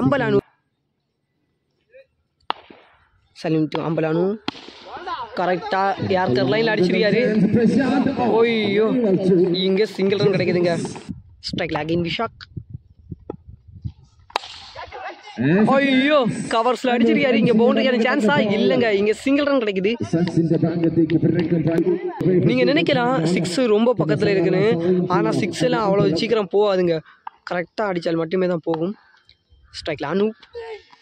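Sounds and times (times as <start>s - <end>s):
cricket bat striking ball: 2.5s - 2.9s, 3.7s - 5.0s, 14.3s - 14.8s.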